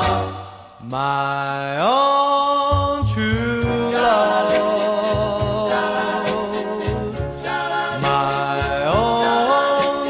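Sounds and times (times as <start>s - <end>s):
doo-wop recording: 0.0s - 10.0s.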